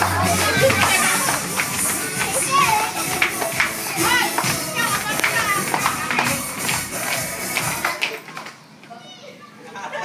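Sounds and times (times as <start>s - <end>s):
music playing: 0.0s - 8.2s
children calling out and chattering: 0.0s - 10.0s.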